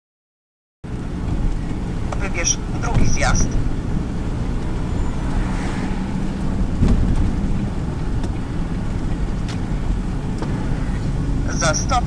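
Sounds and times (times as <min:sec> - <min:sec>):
car engine and tyre rumble: 0:00.8 - 0:12.0.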